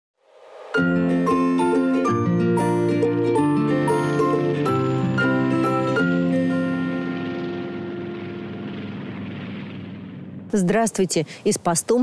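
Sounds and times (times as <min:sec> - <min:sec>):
music jingle held notes: 0:00.8 - 0:09.6
propeller plane drone: 0:04.6 - 0:10.5.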